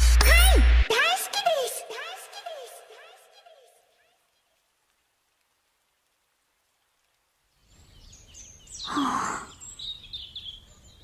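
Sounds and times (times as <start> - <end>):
background noise: 0.0 - 11.0.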